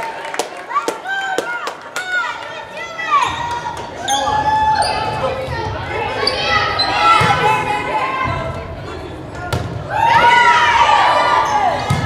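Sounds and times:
young voices calling and cheering: 0.6s - 12.0s.

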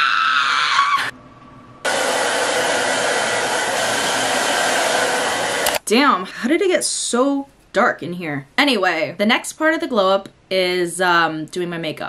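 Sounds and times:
hair dryer running: 1.8s - 5.8s.

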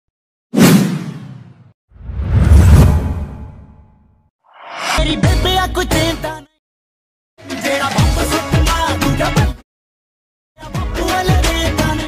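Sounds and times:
whoosh sound effect: 0.6s - 3.9s, 4.6s - 5.4s.

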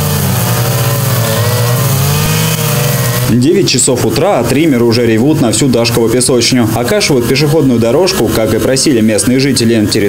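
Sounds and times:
string trimmers cutting grass: 0.0s - 10.0s.

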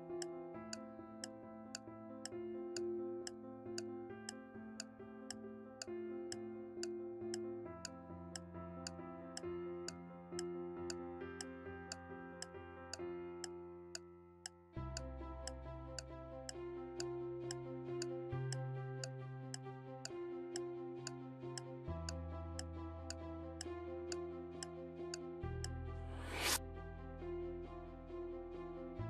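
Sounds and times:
rising whoosh: 26.1s - 26.6s.

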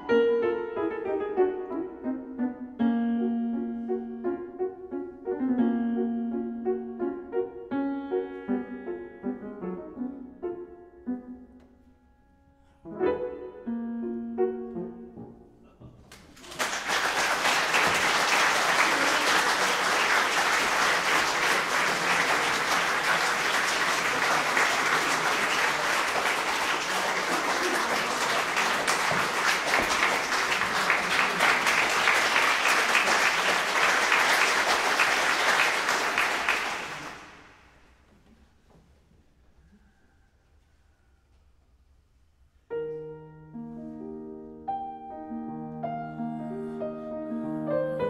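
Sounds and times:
audience applauding: 16.1s - 37.7s.

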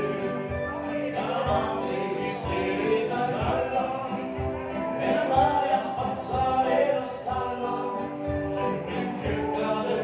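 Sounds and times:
voices singing along: 0.0s - 10.0s.

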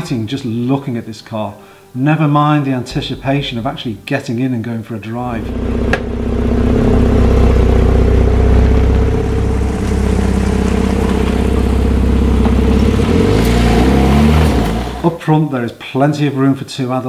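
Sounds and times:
car engine idling: 5.2s - 15.1s
car pulling away: 5.2s - 15.1s.

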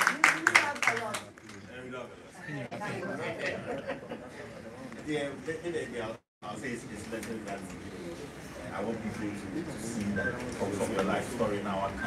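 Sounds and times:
indistinct overlapping voices: 0.1s - 12.0s.

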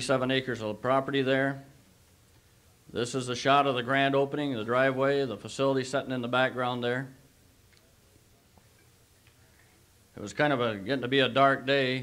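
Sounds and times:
tape hiss: 0.0s - 12.0s.

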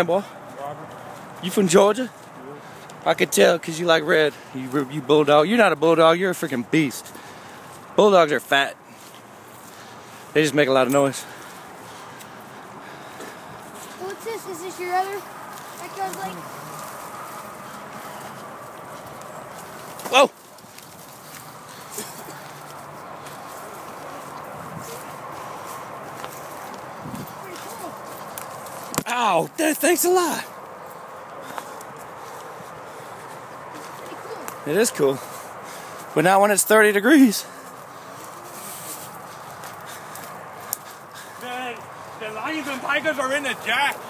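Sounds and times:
faint outdoor background noise: 0.0s - 44.0s
footsteps through dry leaves: 8.8s - 29.0s, 30.1s - 44.0s.

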